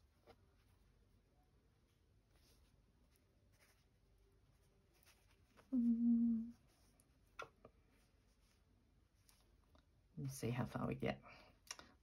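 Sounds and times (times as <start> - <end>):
fabric and thread rustling: 0.0 - 10.1
woman humming: 5.7 - 6.6.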